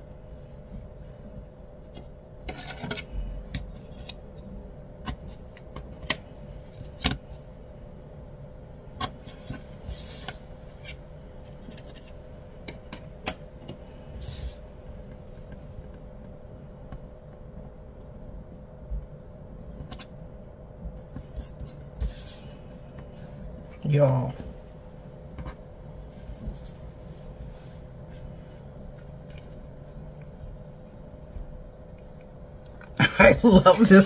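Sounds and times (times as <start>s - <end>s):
faint hum: 0.0s - 34.0s
paper rustling and sliding: 9.2s - 11.0s, 14.1s - 14.8s, 21.3s - 23.4s, 26.1s - 28.2s.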